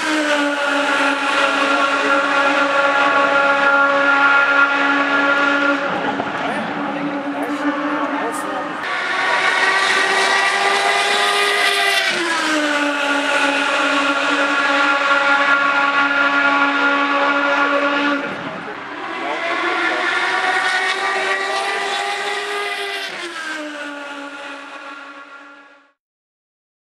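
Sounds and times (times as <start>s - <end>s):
race car engine whine: 0.0s - 26.0s.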